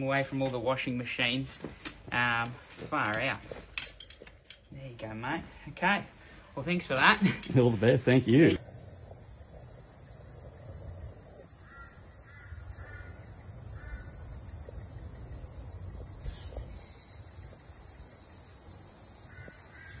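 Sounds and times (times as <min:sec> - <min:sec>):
steady high hiss: 0:00.0 - 0:20.0
bird calls: 0:11.4 - 0:20.0.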